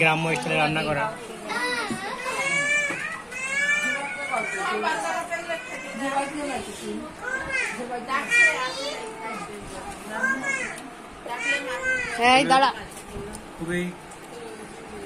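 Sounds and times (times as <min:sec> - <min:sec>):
lively chatter of voices: 0:00.0 - 0:15.0
children calling out: 0:01.5 - 0:06.3, 0:07.2 - 0:12.3.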